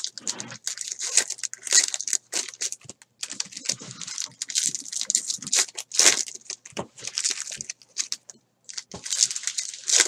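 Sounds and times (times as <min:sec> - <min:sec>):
plastic wrappers crinkling: 0:00.0 - 0:10.0.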